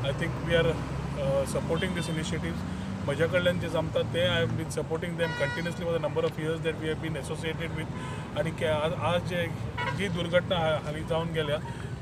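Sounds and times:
man speaking: 0.0 - 11.9.

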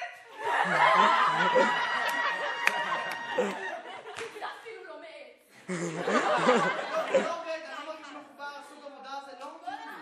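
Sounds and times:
young people laughing: 0.3 - 4.7, 5.7 - 8.2, 9.5 - 10.0.

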